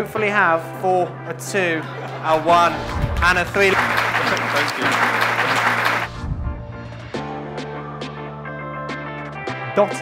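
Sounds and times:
audience applauding: 2.0s - 6.2s.

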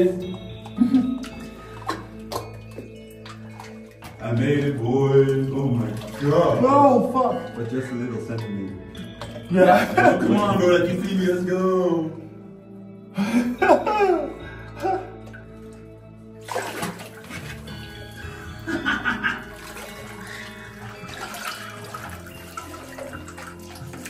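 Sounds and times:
water sloshing and splashing: 0.0s - 11.4s, 14.6s - 24.0s.

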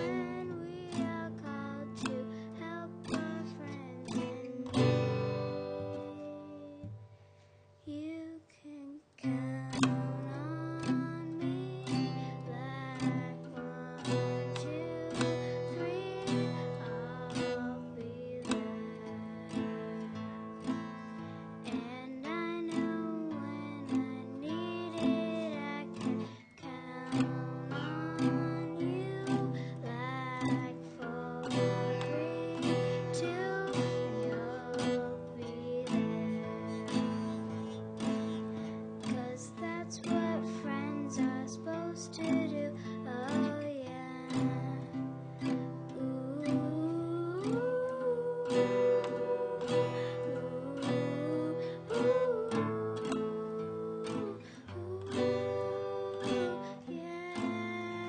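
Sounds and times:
person singing: 0.0s - 7.0s, 7.9s - 58.0s
acoustic guitar strumming: 0.0s - 7.6s, 9.2s - 58.0s.

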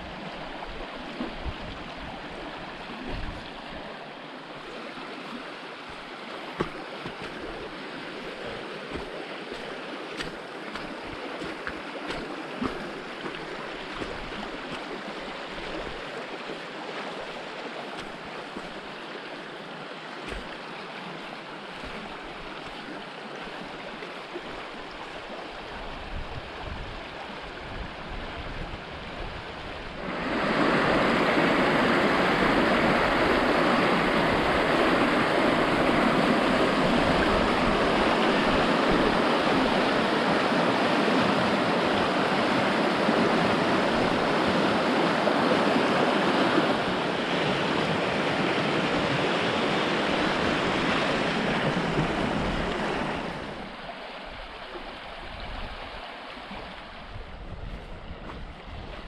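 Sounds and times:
river rushing over stones: 0.0s - 57.2s.

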